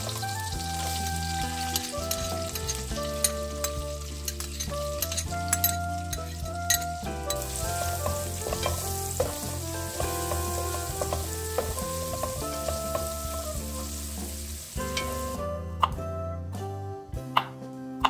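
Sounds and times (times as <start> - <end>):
food sizzling in pan: 0.0 - 6.4, 7.0 - 15.4
background music: 0.0 - 18.0.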